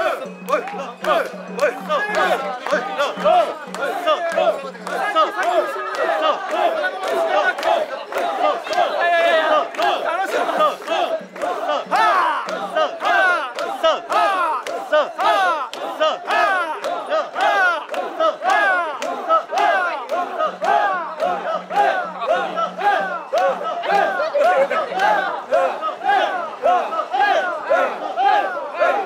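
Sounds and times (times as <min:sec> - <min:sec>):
crowd chanting in unison: 0:00.0 - 0:29.0.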